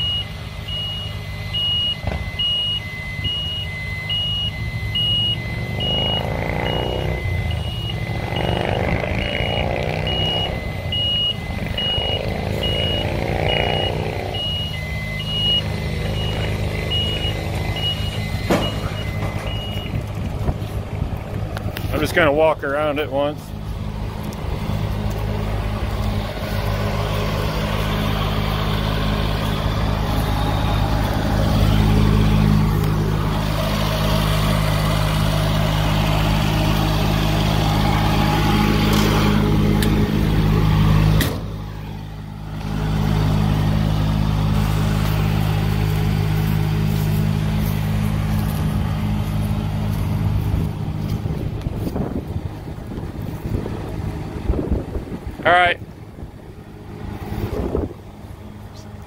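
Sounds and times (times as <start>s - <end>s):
engine running steadily: 0.0s - 59.0s.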